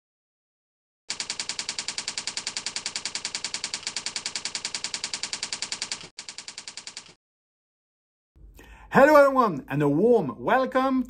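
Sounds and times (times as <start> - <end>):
rapid keyboard typing: 1.1 - 7.2.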